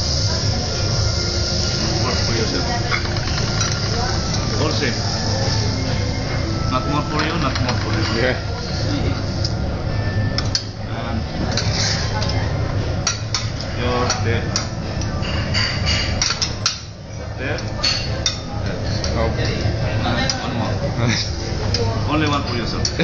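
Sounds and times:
background chatter: 0.0 - 23.0
steady hum: 0.0 - 23.0
utensils and dishes clinking: 0.0 - 23.0.

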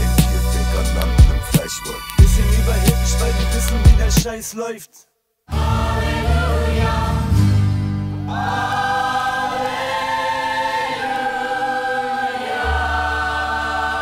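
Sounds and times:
choir singing held notes: 5.5 - 7.6, 8.2 - 14.0.

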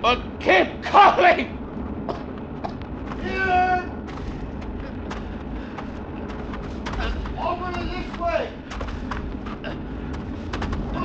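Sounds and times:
fire crackling: 0.0 - 11.0
low rumble: 0.0 - 11.0.

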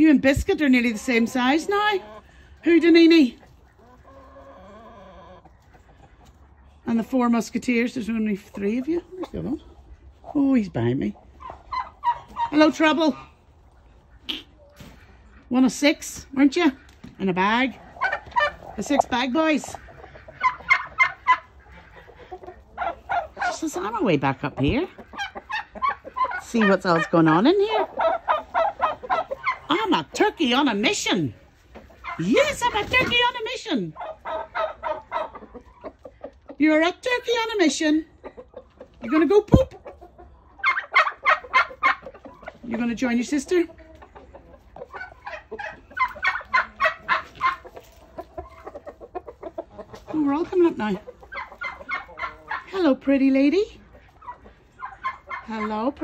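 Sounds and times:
turkey calling: 11.2 - 15.5, 16.5 - 36.6, 38.2 - 42.8, 43.7 - 56.0.

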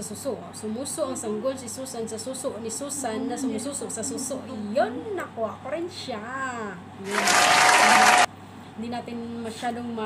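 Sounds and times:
burst of applause: 7.1 - 8.3.

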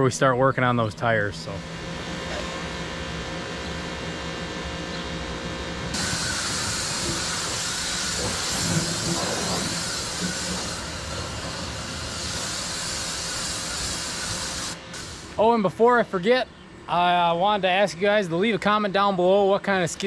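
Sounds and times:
pressure washer motor: 1.5 - 15.4
water jet hissing: 5.9 - 15.5.

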